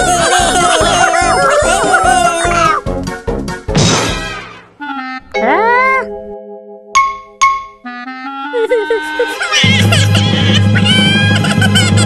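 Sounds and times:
upbeat cartoon music: 0:00.0 - 0:12.0
noisy crash: 0:03.7 - 0:04.5.

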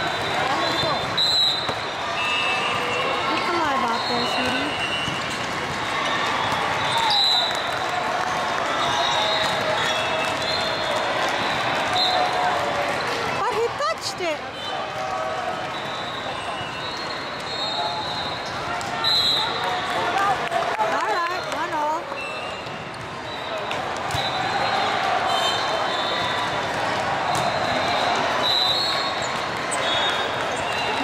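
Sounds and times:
volleyballs hit and bouncing: 0:00.0 - 0:14.1, 0:18.4 - 0:31.0
voices calling and chattering: 0:00.0 - 0:31.0.

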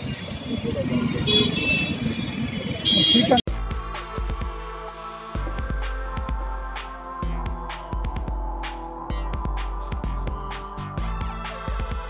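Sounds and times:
street traffic: 0:00.0 - 0:12.0
vehicle horn: 0:01.2 - 0:03.4
background music: 0:03.5 - 0:12.0.

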